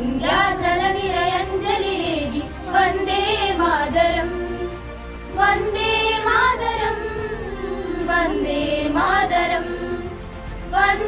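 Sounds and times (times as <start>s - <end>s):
girls singing together: 0.0s - 11.0s.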